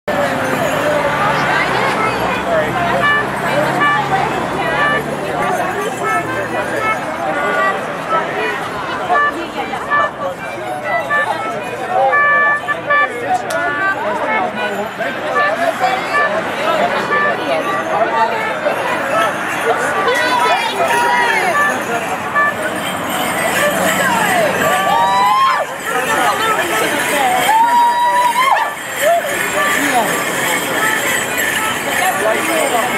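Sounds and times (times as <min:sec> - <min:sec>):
street traffic hum: 0:00.0 - 0:32.9
people chatting: 0:00.1 - 0:32.9
short high tones: 0:01.8 - 0:32.9.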